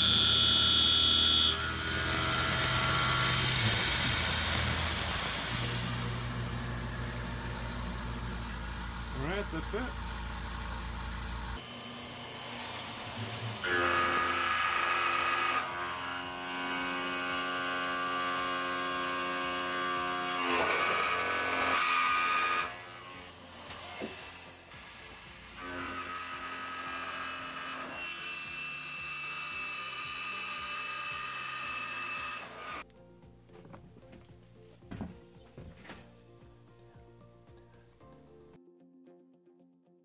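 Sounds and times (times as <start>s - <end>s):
milling machine whine: 0.0s - 32.8s.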